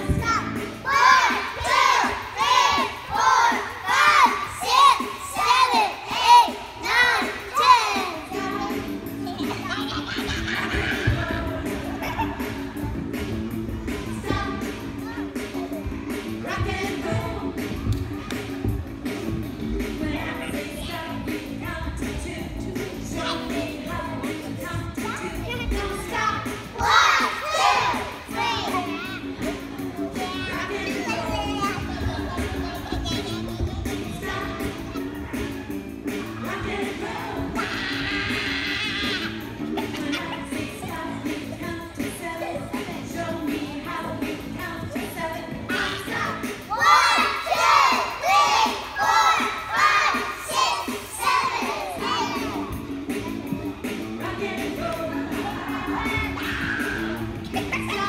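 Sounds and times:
children singing loudly: 0:00.0 - 0:12.2, 0:23.0 - 0:44.2, 0:45.0 - 0:58.0
music playing: 0:00.0 - 0:58.0.

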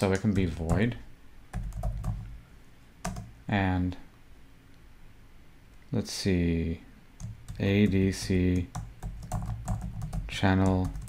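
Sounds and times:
computer keyboard keystrokes: 0:01.5 - 0:02.3, 0:03.0 - 0:03.3, 0:07.2 - 0:11.0.

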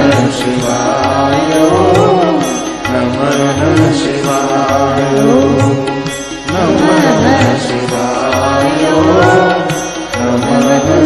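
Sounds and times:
person singing ornamented melody: 0:00.0 - 0:11.0.

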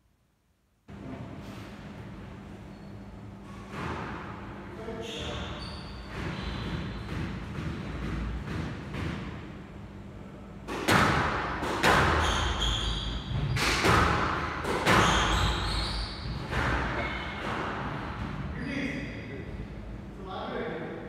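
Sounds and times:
squash ball hitting rackets and walls: 0:03.4 - 0:09.9, 0:10.5 - 0:18.6
shoes squeaking on wooden floor: 0:05.0 - 0:07.1.

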